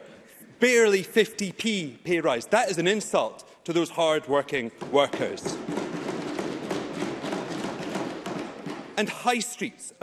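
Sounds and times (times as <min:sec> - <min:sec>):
many hands clapping: 0:05.2 - 0:09.1.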